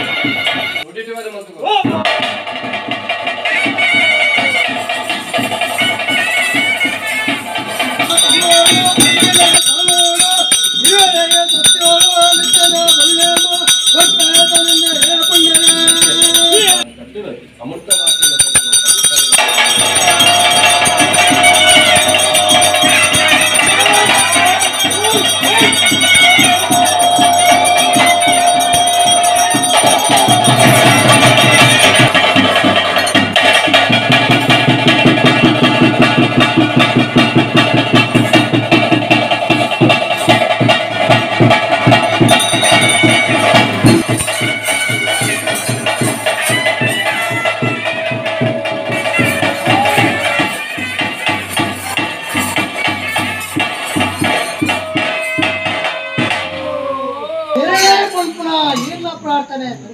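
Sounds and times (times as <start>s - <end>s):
steady percussion beat: 0.0s - 0.9s, 1.7s - 16.9s, 17.9s - 59.7s
wavering melody: 5.7s - 16.9s, 17.9s - 59.3s
jingling rattles: 7.1s - 16.9s, 17.9s - 34.9s, 41.8s - 47.6s.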